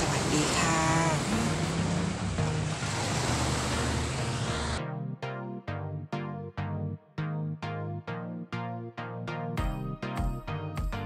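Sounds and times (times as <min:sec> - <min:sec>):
surf and wind on beach: 0:00.0 - 0:04.8
electronic music with sharp beats: 0:03.7 - 0:11.0.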